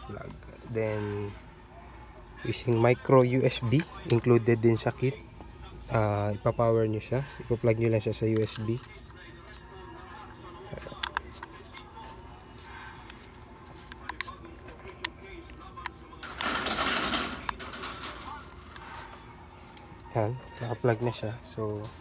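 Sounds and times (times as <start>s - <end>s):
plastic plugs clicking: 10.9s - 11.8s.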